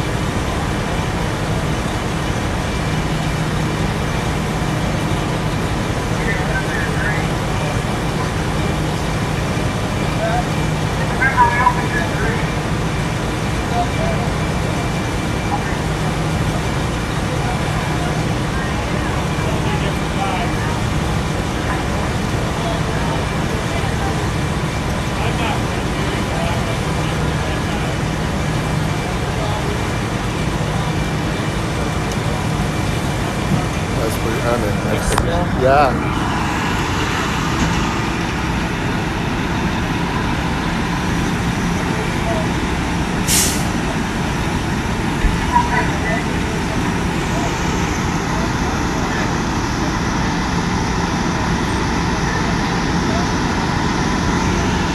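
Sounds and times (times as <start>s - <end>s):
diesel engines humming: 0.0s - 54.9s.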